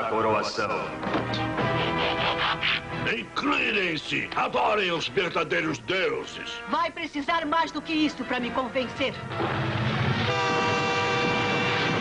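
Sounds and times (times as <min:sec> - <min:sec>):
held horn-like chord: 0:10.2 - 0:12.0.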